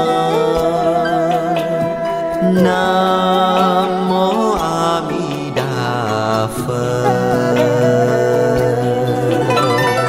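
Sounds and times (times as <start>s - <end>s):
devotional chant in held notes: 0.0s - 10.0s
instrumental music: 0.0s - 10.0s.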